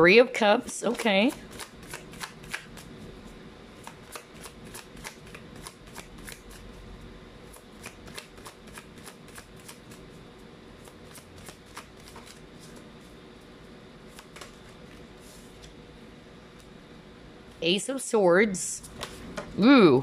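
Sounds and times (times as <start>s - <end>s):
cards being shuffled: 11.4s - 12.9s.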